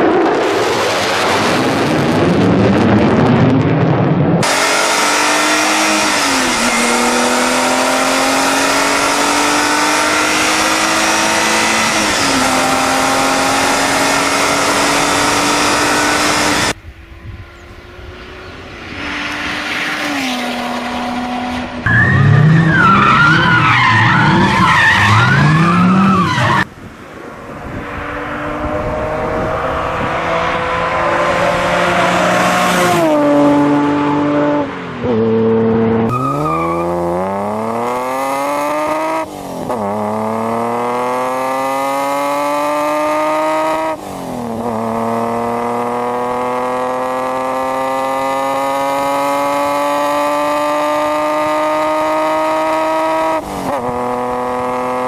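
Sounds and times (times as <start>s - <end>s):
sports car accelerating: 0.0s - 55.0s
tyres squealing: 21.9s - 26.7s.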